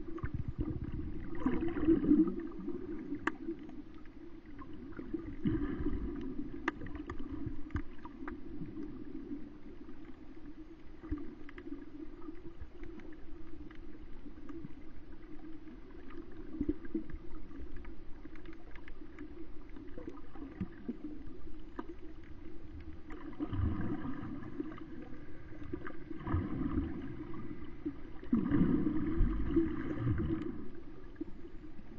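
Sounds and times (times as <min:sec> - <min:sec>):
muffled underwater hum: 0:00.0 - 0:31.9
small clicks and crackles: 0:00.0 - 0:31.9.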